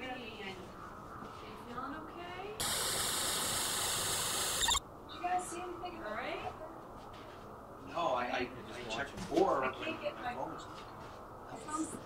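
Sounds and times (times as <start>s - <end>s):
loud electronic static hiss: 2.6s - 4.8s.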